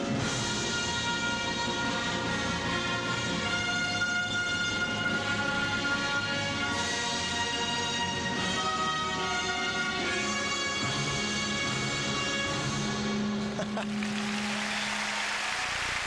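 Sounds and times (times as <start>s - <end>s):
crowd applause: 13.6s - 16.0s.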